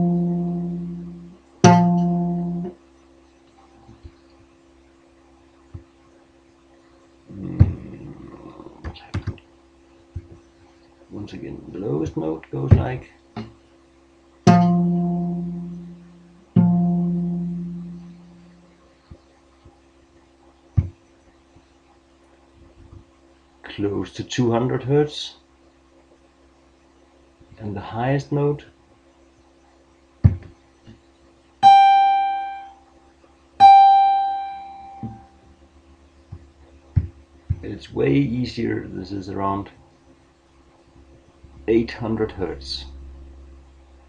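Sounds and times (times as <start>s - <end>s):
low guitar note plucked: 0.0s - 2.8s, 14.5s - 18.6s, 33.6s - 35.4s.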